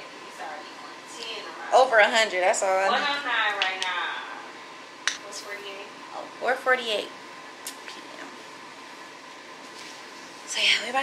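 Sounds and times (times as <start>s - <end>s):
air conditioning hiss: 0.0s - 11.0s
faint steady hum: 0.0s - 11.0s.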